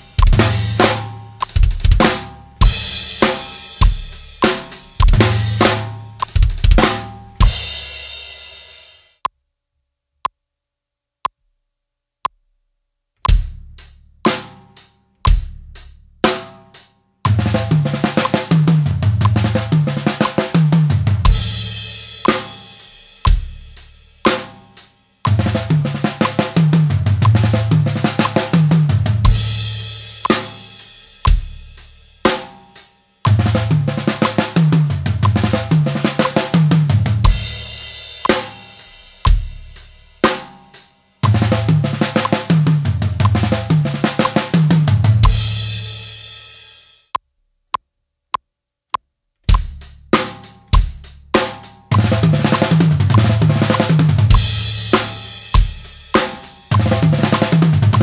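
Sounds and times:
snare and tom drum runs: 0.0s - 7.9s, 17.3s - 30.6s, 31.2s - 31.6s, 33.3s - 45.6s, 49.5s - 58.0s.

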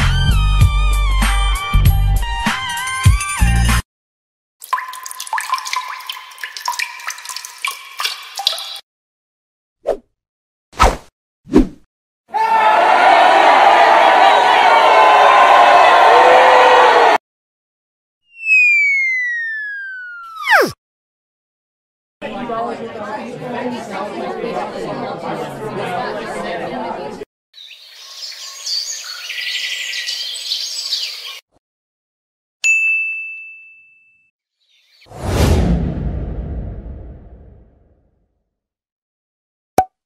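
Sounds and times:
crowd cheering: 12.3s - 17.2s, 22.2s - 27.2s
whistle gliding downward: 18.3s - 20.8s
whoosh with deep rumble: 35.1s - 37.8s.

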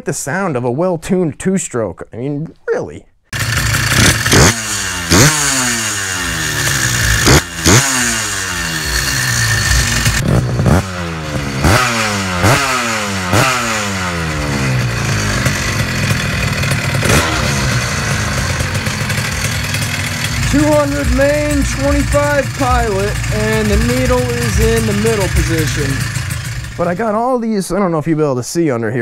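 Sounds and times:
two-stroke engine revving: 3.3s - 27.2s.

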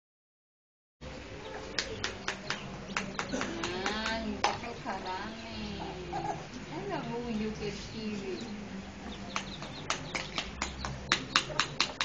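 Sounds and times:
containers clicking on concrete: 9.4s - 12.0s.

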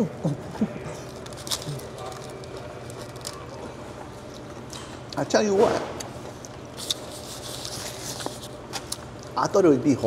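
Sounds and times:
paper napkin rustling: 6.8s - 9.0s.

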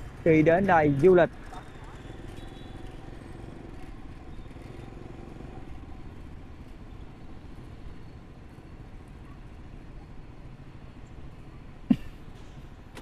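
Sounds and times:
motorbikes passing: 0.0s - 13.0s.

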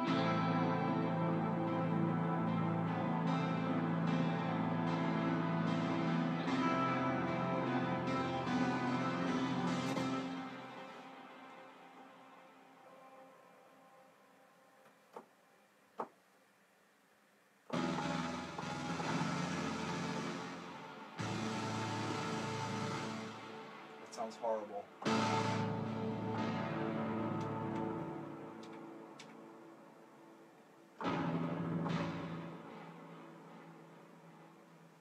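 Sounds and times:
electronic music: 0.0s - 14.2s, 17.7s - 35.0s
sustained synth chords: 0.0s - 14.7s, 17.7s - 35.0s.

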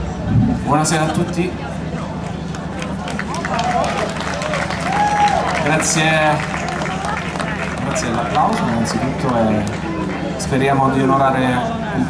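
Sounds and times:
cheering voices: 2.0s - 10.8s
audience clapping: 2.2s - 10.4s.

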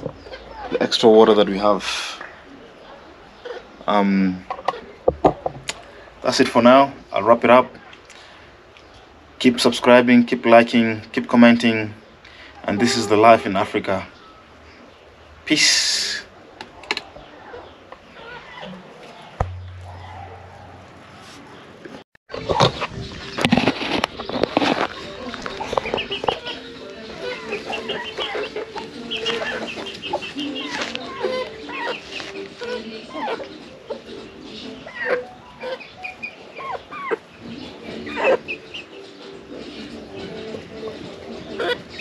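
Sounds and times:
chickens clucking: 0.0s - 42.0s.

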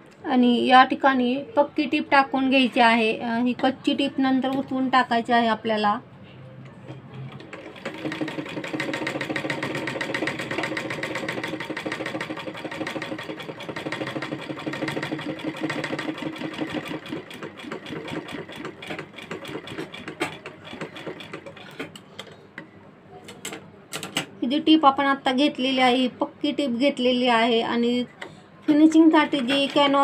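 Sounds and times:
sewing machine stitching: 7.2s - 22.0s.

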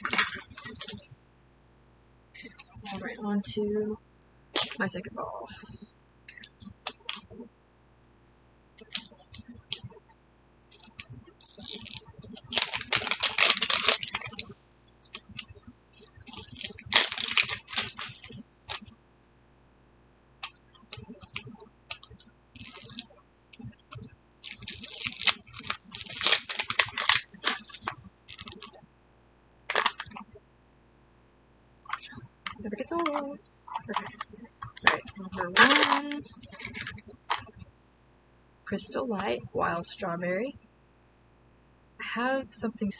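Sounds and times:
plastic wrapping crinkling: 0.0s - 1.0s, 2.8s - 3.1s, 4.6s - 4.9s, 10.7s - 18.8s, 20.4s - 23.1s, 24.4s - 28.7s, 29.7s - 30.2s, 31.9s - 37.5s.

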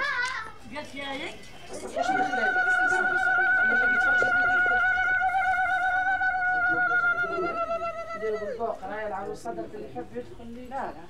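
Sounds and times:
woman ululating: 1.9s - 8.6s.

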